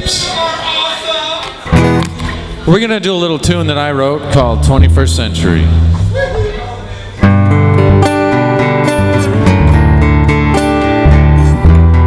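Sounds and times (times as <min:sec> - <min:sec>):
upright bass notes: 0:03.4 - 0:06.2, 0:07.2 - 0:12.0
strummed acoustic guitar: 0:07.2 - 0:12.0.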